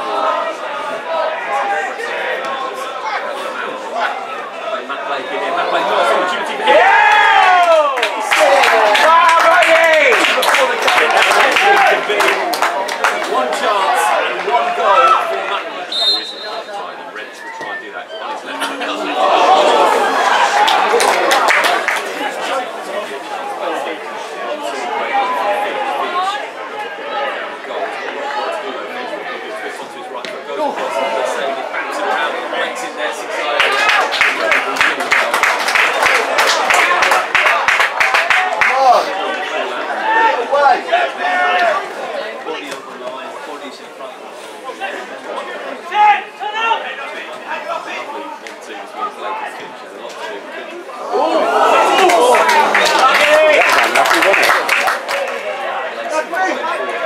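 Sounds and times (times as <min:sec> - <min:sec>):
spectators talking and calling out: 0:00.0 - 0:57.0
short whistle blast: 0:15.9 - 0:16.8.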